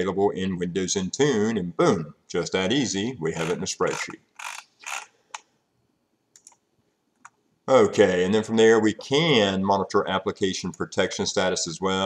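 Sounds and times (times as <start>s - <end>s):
mouse scroll wheel ratcheting: 3.4s - 5.1s.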